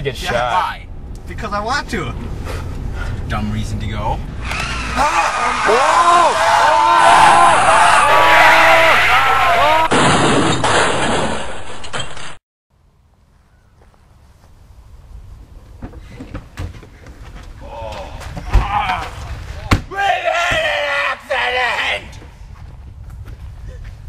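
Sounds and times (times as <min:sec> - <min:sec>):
people crying out: 0:04.5 - 0:09.9
loud crash: 0:08.1 - 0:12.4.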